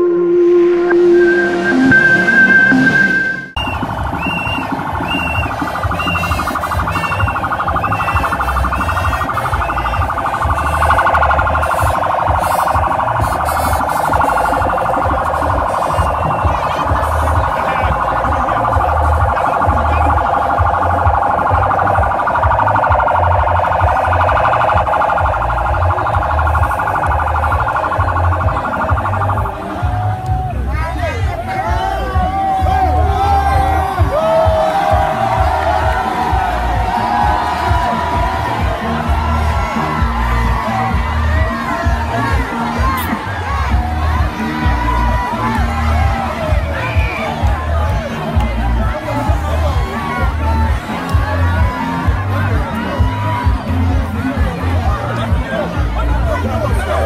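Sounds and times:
chirping note: 0.0s - 3.6s
electronic music sting: 0.0s - 5.7s
pulsing low beat: 0.0s - 57.0s
sirens wailing: 0.0s - 57.0s.

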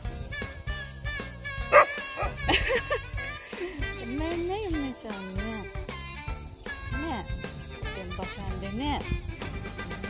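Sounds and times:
background music: 0.0s - 10.0s
dog barking: 1.7s - 2.4s
dog yelping: 1.7s - 2.4s.

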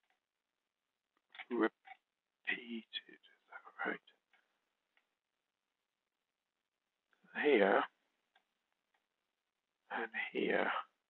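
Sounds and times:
man speaking: 1.4s - 1.7s, 2.5s - 4.1s, 7.3s - 8.0s, 9.9s - 11.0s.

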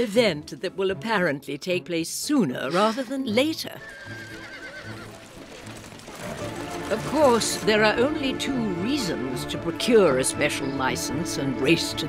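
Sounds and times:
horse whinnying: 2.7s - 7.0s
hooves on gravel: 3.8s - 8.6s.

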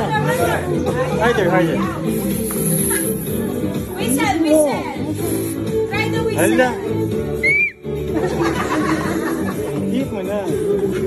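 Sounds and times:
background music: 0.0s - 11.0s
short whistle note: 7.4s - 7.8s.

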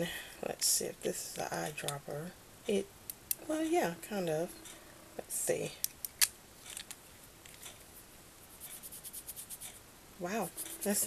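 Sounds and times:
fingers rubbing on skin: 8.4s - 11.0s.

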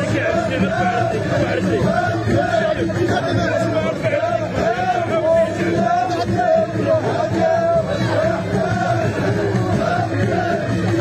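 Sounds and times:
crowd of voices: 0.0s - 11.0s
men chanting together: 0.0s - 11.0s.

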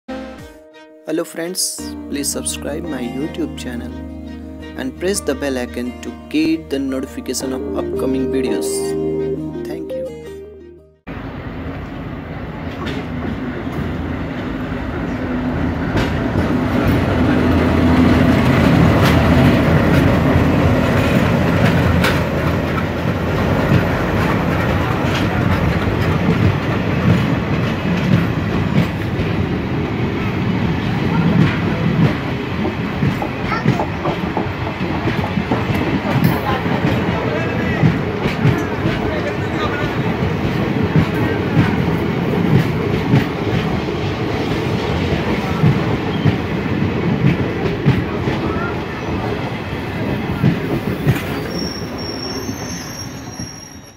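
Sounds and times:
train coaches rumbling past: 11.1s - 53.9s
wheels clacking over rail joints: 12.6s - 51.8s.

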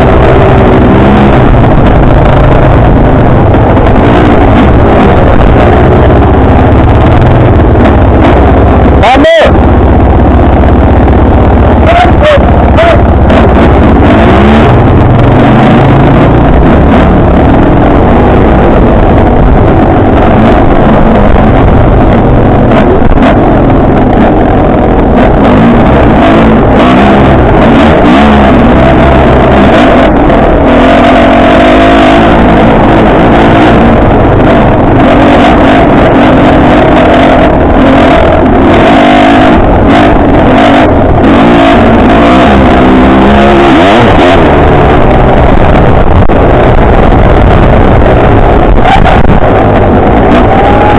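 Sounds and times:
dirt bike engine revving: 0.0s - 50.9s.

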